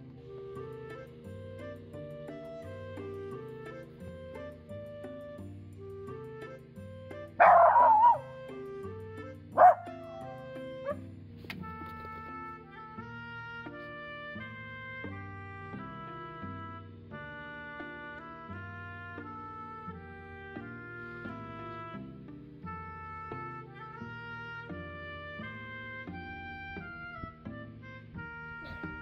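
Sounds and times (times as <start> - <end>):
background music: 0.0 - 29.0
dog barking: 7.4 - 8.3, 9.6 - 10.9
dog yip: 7.4 - 8.3, 9.6 - 11.0.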